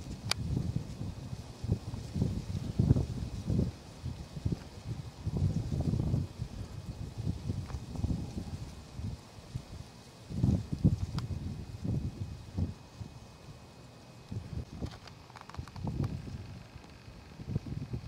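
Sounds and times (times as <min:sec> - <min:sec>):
wind buffeting microphone: 0:00.0 - 0:13.6, 0:14.3 - 0:18.0.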